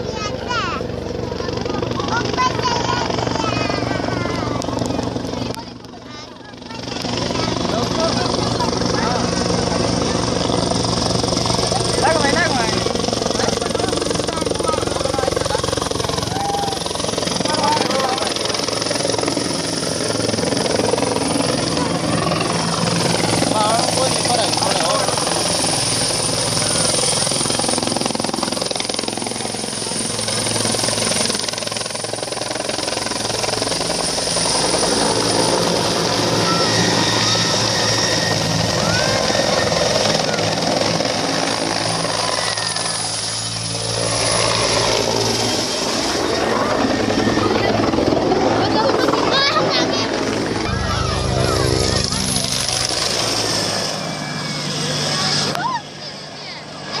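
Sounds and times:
helicopter flying low: 0:00.0 - 0:57.0
voices of onlookers: 0:00.0 - 0:57.0.

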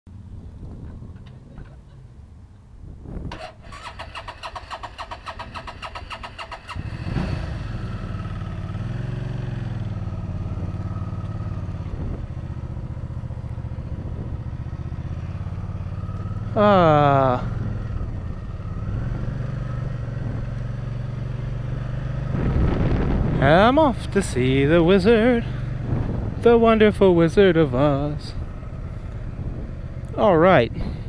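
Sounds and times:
motorcycle electric starter cranking: 0:03.3 - 0:07.0
motorcycle engine idling: 0:03.7 - 0:18.8.

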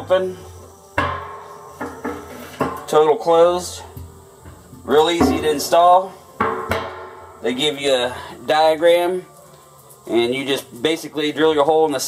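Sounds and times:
music: 0:00.0 - 0:12.0
metal clunk ringing in steel drum: 0:01.0 - 0:08.1.

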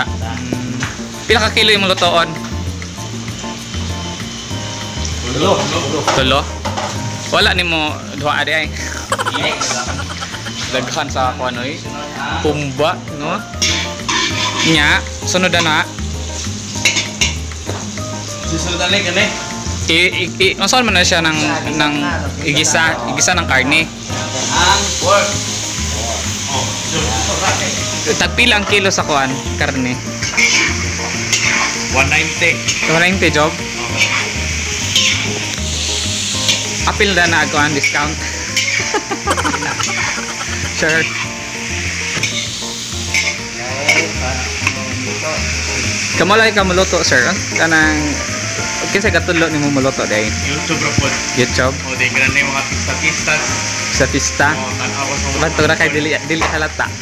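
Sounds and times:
food sizzling in a wok: 0:00.0 - 0:57.0
metal spatula scraping a wok: 0:13.6 - 0:14.8, 0:16.7 - 0:17.4, 0:30.2 - 0:31.8, 0:33.9 - 0:36.8, 0:37.8 - 0:39.0, 0:39.8 - 0:44.8.

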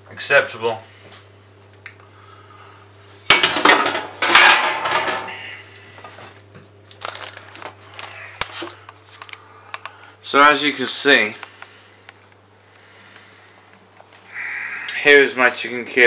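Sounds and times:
baking tray and utensils clattering: 0:03.3 - 0:05.5.

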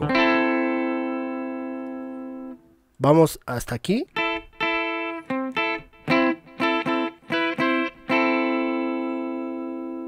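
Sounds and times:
clean electric guitar chord ringing: 0:00.0 - 0:02.6, 0:04.2 - 0:10.0.

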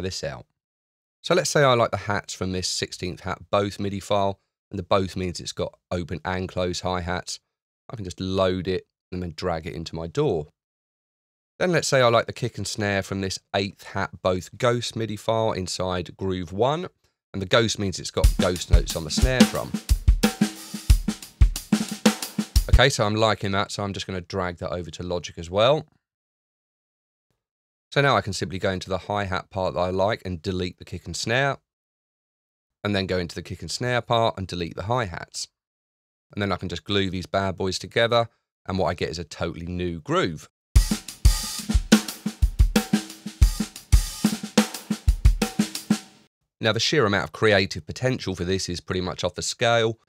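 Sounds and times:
hi-hat groove: 0:18.2 - 0:22.8, 0:40.8 - 0:46.2
snare drum: 0:18.2 - 0:22.9, 0:40.8 - 0:46.2
kick drum: 0:40.8 - 0:44.2, 0:45.1 - 0:45.5.

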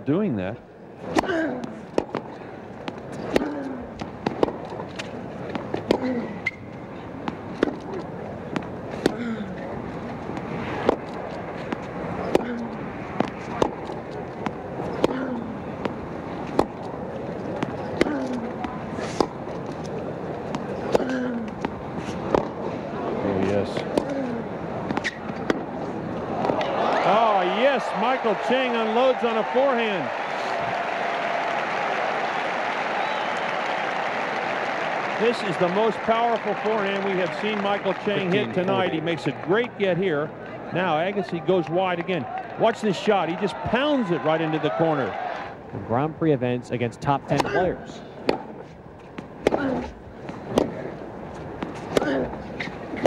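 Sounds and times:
tennis racket hitting ball: 0:01.1 - 0:06.2, 0:10.3 - 0:19.4, 0:20.4 - 0:22.6, 0:23.8 - 0:25.8, 0:48.2 - 0:51.0, 0:51.6 - 0:53.0
crowd murmur: 0:05.1 - 0:46.2.

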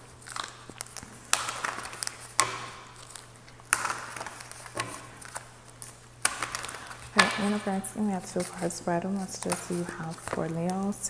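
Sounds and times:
light rustling of cards: 0:00.0 - 0:11.0
cards being shuffled: 0:00.1 - 0:11.0.

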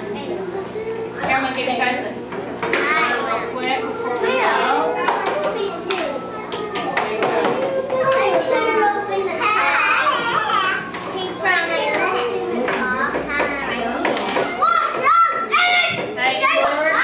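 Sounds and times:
children chattering: 0:00.0 - 0:17.0.

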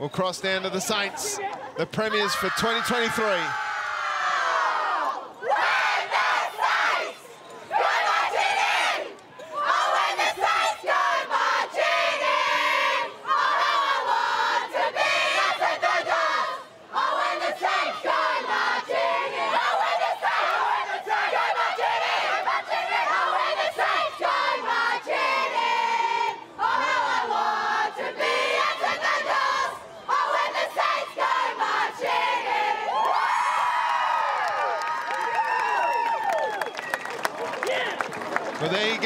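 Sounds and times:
women singing together loudly: 0:04.8 - 0:33.0.

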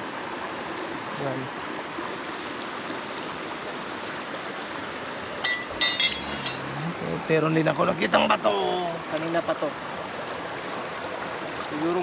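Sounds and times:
stream flowing: 0:00.0 - 0:12.0.

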